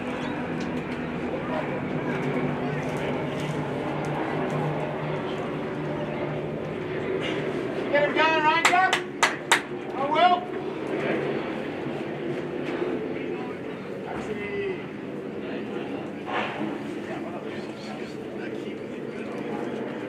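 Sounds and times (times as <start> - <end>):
spectators chattering: 0.0 - 7.9
sharp claps: 8.6 - 9.7.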